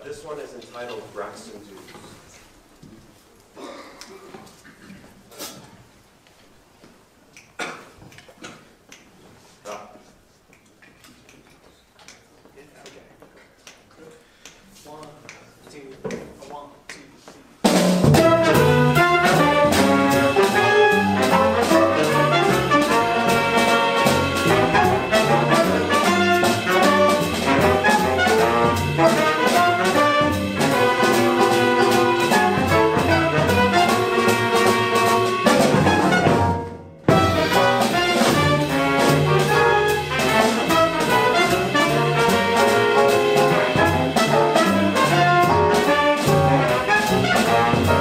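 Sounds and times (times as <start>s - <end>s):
small jazz band playing: 17.4s - 48.0s.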